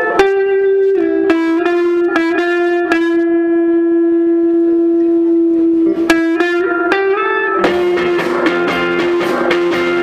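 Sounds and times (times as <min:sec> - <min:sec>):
electric guitar held note: 0:00.0 - 0:10.0.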